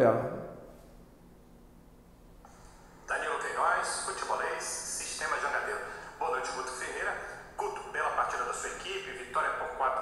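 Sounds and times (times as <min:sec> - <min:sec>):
person talking over a call link: 0:03.1 - 0:10.0.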